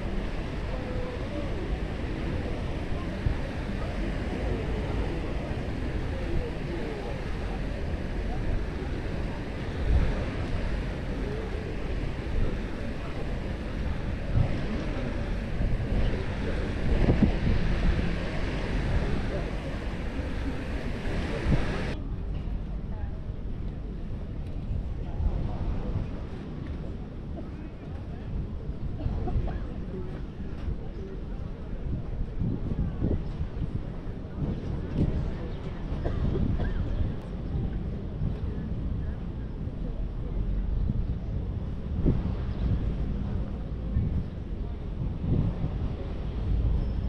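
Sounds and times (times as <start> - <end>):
surf: 0.0 - 22.0
people chatting: 0.0 - 47.0
wind rumbling on microphone: 0.0 - 47.0.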